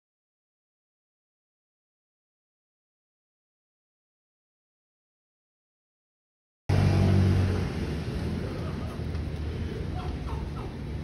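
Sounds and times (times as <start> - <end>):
low rumble of city traffic: 6.7 - 11.0.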